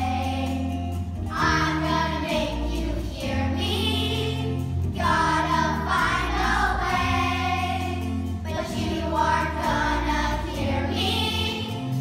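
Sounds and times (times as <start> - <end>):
children singing together: 0.0 - 12.0
instrumental accompaniment with bass line: 0.0 - 12.0.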